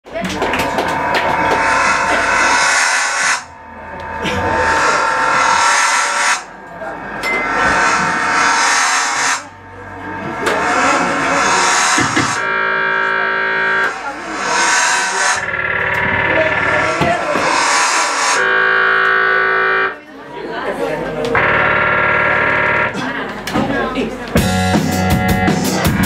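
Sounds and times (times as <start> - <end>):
live rock band playing: 24.4 - 26.0.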